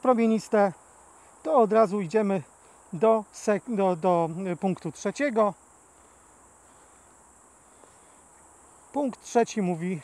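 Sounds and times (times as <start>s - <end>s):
crickets chirring: 0.0s - 10.0s
person speaking: 1.4s - 5.6s, 8.9s - 10.0s.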